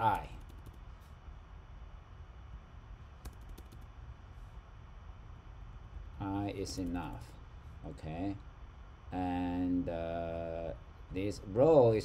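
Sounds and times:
low steady hum: 0.0 - 12.0
keyboard key clicks: 3.2 - 3.9.

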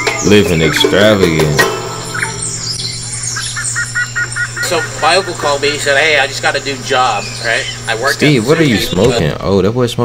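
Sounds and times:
bird calling repeated notes: 0.0 - 9.2
steady low hum: 0.0 - 9.5.

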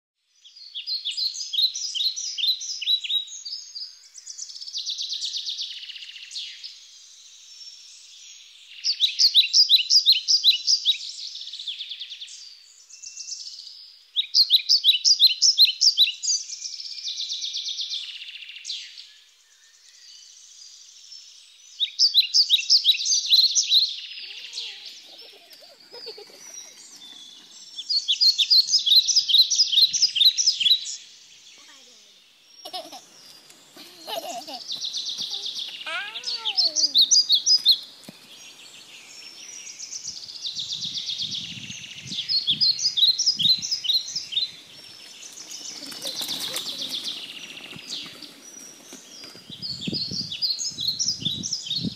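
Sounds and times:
songbird singing: 0.2 - 51.9.

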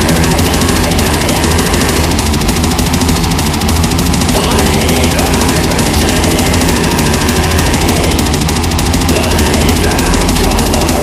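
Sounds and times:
extreme metal music: 0.0 - 11.0.

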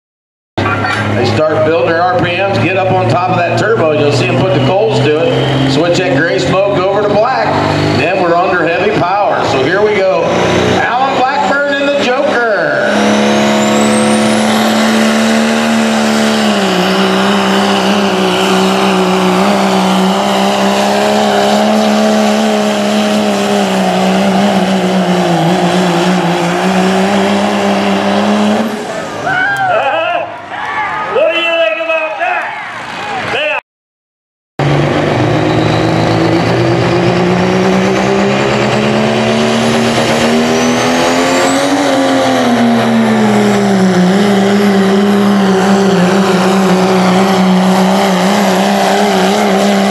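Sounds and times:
diesel engine under load: 0.6 - 32.0, 34.6 - 49.9.

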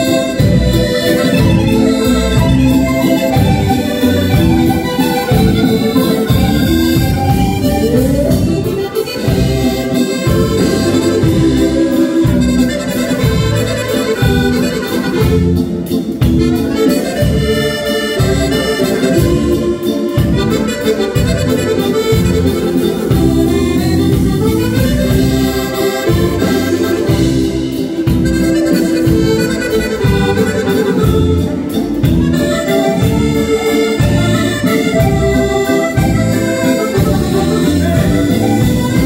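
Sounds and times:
accordions playing dance tune: 0.0 - 39.0
bass beat: 0.0 - 39.0.

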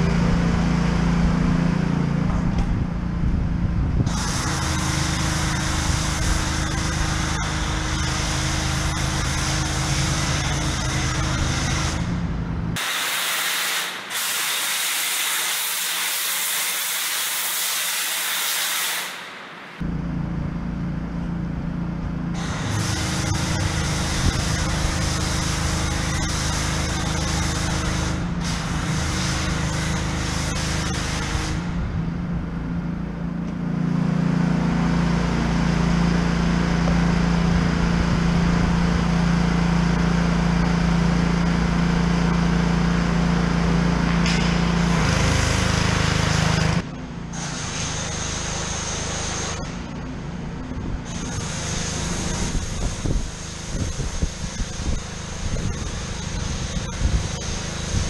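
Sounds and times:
pressure washer humming: 0.0 - 58.0
foam cannon spray hiss: 12.8 - 19.9, 51.1 - 58.0.

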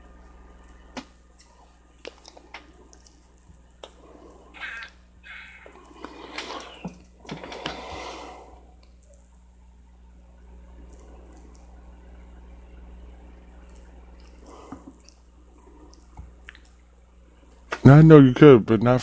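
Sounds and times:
low electrical hum: 0.0 - 19.0
faint clicks: 0.5 - 8.1, 8.8 - 9.4, 10.7 - 16.8.

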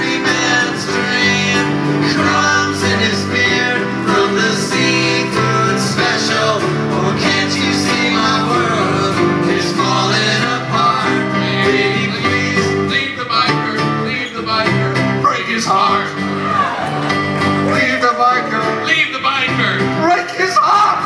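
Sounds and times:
voices singing: 0.0 - 18.7
piano: 0.0 - 21.0
strummed acoustic guitar: 0.0 - 21.0.

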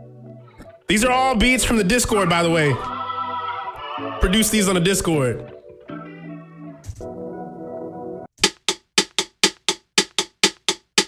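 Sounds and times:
drum machine beat: 8.4 - 11.0.

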